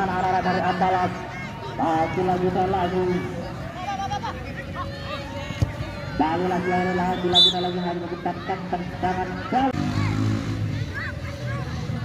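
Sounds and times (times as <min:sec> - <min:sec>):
spectators' voices: 0:00.0 - 0:12.0.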